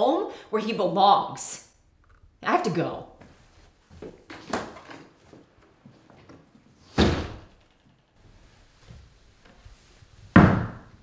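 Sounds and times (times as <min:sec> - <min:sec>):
glass door slamming shut: 0:06.9 - 0:07.5.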